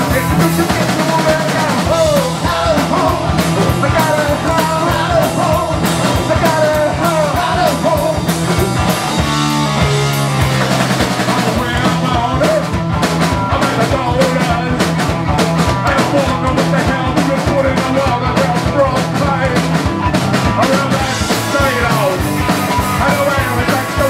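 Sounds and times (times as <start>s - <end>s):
singer shouting vocals: 0.0s - 9.2s, 11.3s - 19.8s, 20.4s - 24.0s
electric guitar: 0.0s - 24.0s
fast drum beat: 0.0s - 24.0s.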